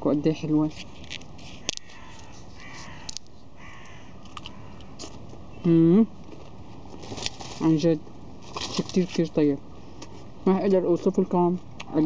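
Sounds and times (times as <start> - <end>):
faint bird calls: 1.6 - 6.0.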